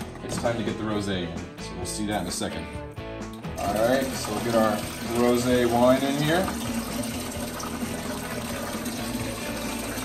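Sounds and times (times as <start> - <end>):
wine pouring into plastic container: 3.6 - 10.0.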